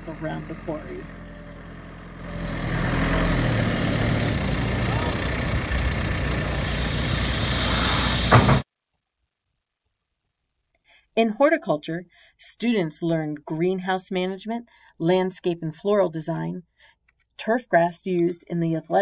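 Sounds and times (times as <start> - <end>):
diesel engine under load: 0.0 - 8.6.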